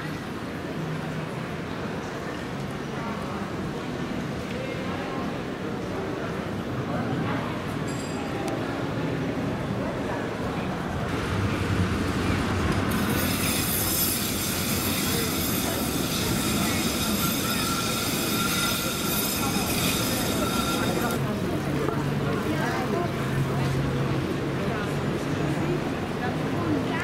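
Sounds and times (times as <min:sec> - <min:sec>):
murmur of passers-by: 0:00.0 - 0:27.0
tram wheels squealing on rails: 0:12.2 - 0:21.4.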